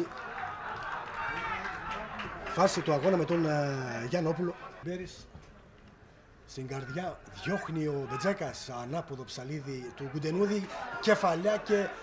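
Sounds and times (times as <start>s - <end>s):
overlapping voices calling out: 0.0s - 4.8s.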